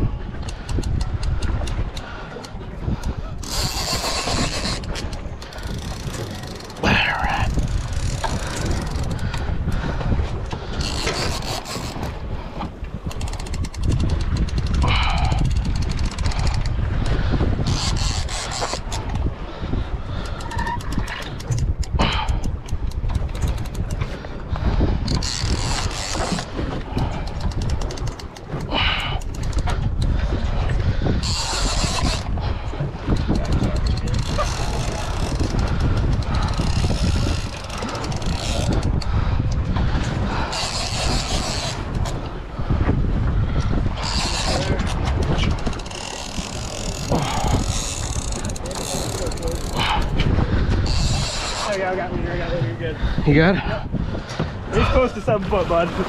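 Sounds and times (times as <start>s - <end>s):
wind rumbling on microphone: 0.0s - 56.0s
fishing reel cranking: 0.4s - 2.0s, 3.0s - 9.4s, 10.7s - 12.1s, 13.0s - 19.2s, 20.2s - 24.0s, 25.0s - 30.1s, 31.2s - 32.3s, 33.1s - 39.1s, 40.4s - 42.2s, 43.6s - 50.1s, 50.8s - 51.8s.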